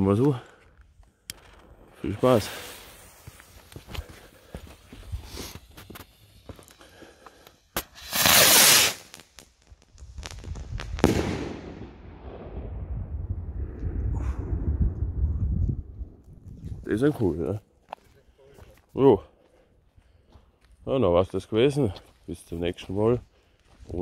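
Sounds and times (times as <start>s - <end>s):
firework crackles: 1.4s - 4.0s, 4.8s - 6.8s, 7.4s - 12.9s
rocket rushing hiss: 2.2s - 3.6s, 5.1s - 6.4s, 7.7s - 9.4s, 10.2s - 12.4s
firework bang: 7.8s - 9.2s, 10.4s - 14.4s.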